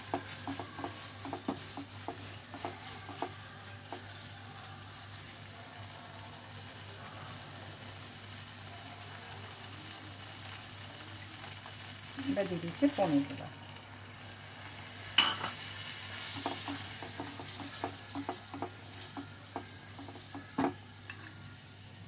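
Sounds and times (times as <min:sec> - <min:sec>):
food sizzling in a frying pan: 0:00.0 - 0:22.0
spatula scraping a pan: 0:15.6 - 0:21.4.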